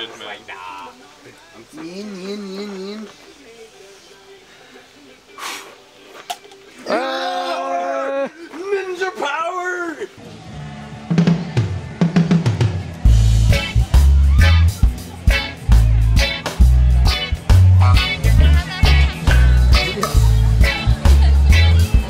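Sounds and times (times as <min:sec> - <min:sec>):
backing track with bass and drums: 0:10.5 - 0:22.0.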